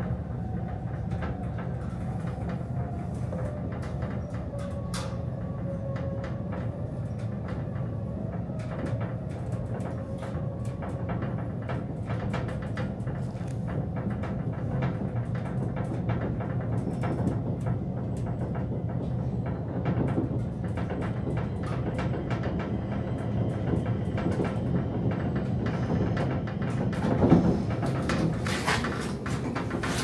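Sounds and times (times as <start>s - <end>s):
elevator hum: 0.0s - 30.0s
elevator ticking and rattling: 0.0s - 30.0s.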